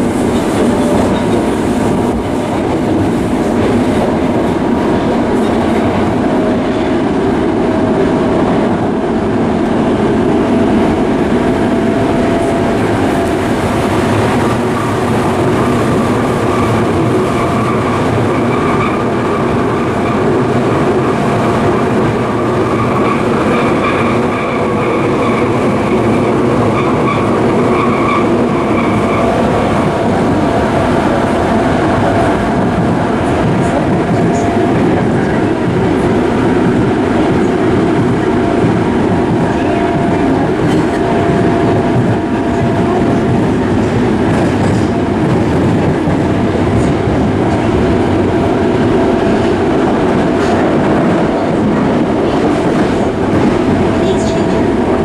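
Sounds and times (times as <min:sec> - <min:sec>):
rail joints clickety-clack: 0:00.0 - 0:55.0
train wheels rumbling on rail: 0:00.0 - 0:55.0.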